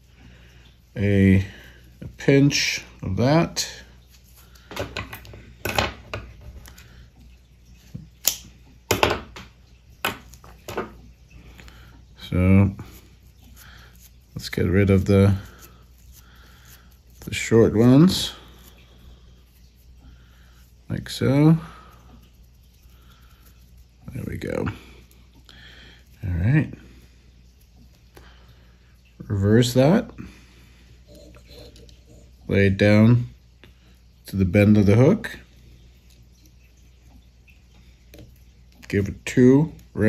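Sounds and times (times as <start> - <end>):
low steady hum: 0.0 - 40.0.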